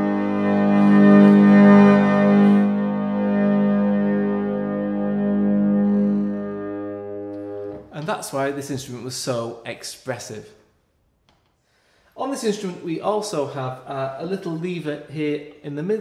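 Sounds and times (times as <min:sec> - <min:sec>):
harmonium chord: 0:00.0 - 0:07.9.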